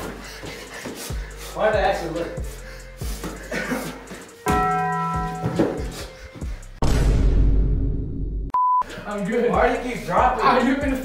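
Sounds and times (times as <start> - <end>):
bell ringing: 4.5 - 5.8.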